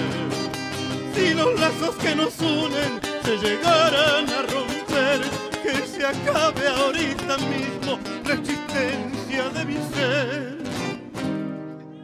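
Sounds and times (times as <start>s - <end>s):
men singing with vibrato: 0.0s - 11.0s
acoustic guitars: 0.0s - 12.0s.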